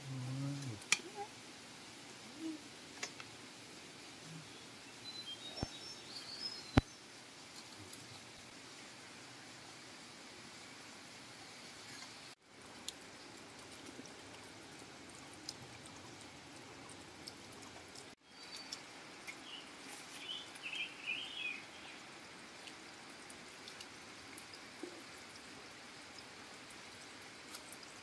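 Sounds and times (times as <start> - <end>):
water trickling: 0.1 - 28.0.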